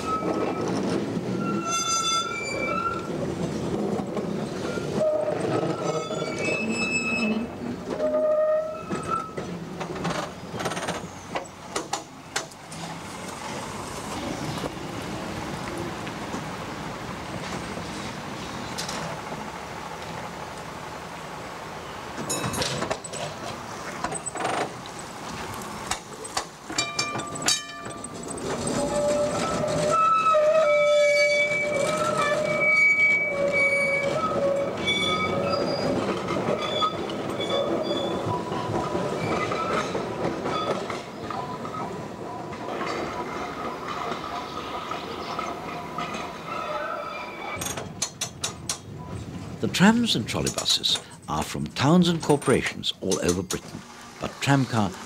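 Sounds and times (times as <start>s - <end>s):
tram wheels squealing: 0.0s - 3.8s, 4.4s - 12.0s, 26.0s - 52.0s
tram wheels clicking over rail joints: 0.0s - 20.8s, 22.1s - 55.0s
tram running noise: 0.0s - 55.0s.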